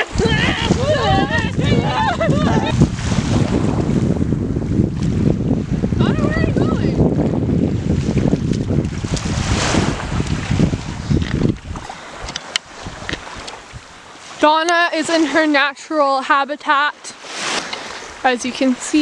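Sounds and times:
person speaking: 0.0s - 2.8s
wind buffeting microphone: 0.0s - 15.7s
small waves washing on beach: 0.0s - 19.0s.

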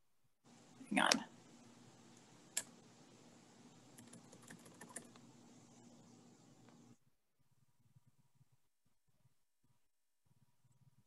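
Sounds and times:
faint steady hum: 0.4s - 11.0s
computer mouse clicks: 2.2s - 2.8s, 4.0s - 5.3s.

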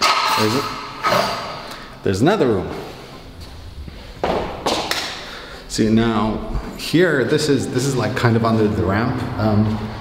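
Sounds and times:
rumbling handling noise: 2.5s - 8.1s
dull thumps: 3.3s - 5.4s.

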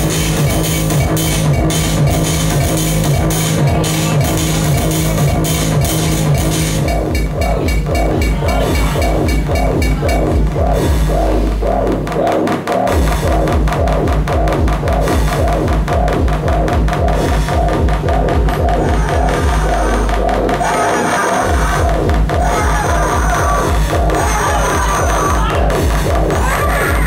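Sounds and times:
electronic dance music: 0.0s - 27.0s
low bass note: 1.0s - 12.2s.

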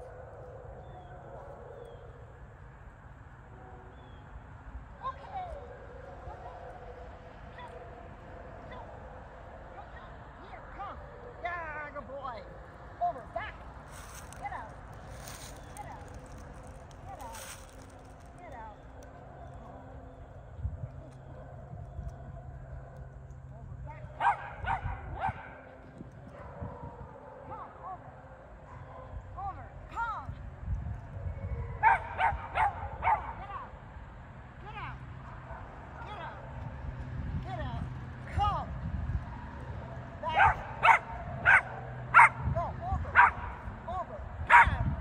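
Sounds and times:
dog barking: 24.1s - 29.2s, 31.8s - 33.5s, 40.3s - 42.5s, 43.1s - 43.6s, 44.5s - 44.9s.

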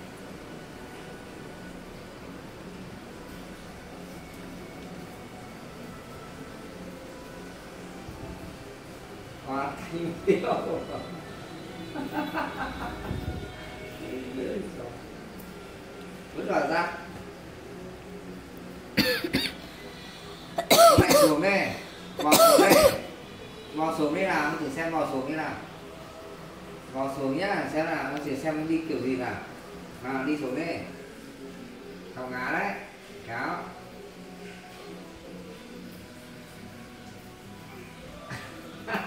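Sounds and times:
room hiss: 0.0s - 39.0s.

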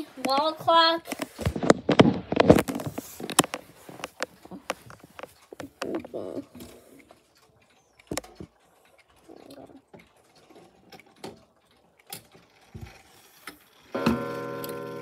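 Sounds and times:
clock striking: 13.9s - 15.0s.

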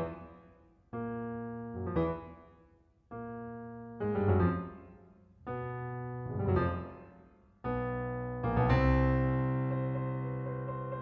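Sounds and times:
solo piano chords: 0.9s - 2.5s, 3.1s - 11.0s.

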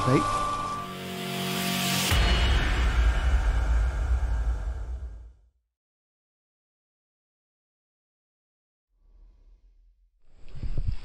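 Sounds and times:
whoosh: 1.4s - 5.6s
deep bass hit rumbling: 2.1s - 5.6s.

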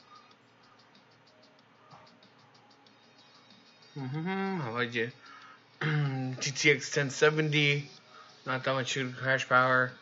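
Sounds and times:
faint music with ticking beat: 0.0s - 10.0s.

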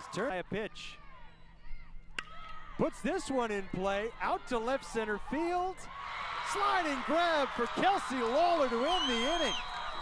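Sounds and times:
faint stadium background: 0.0s - 10.0s.

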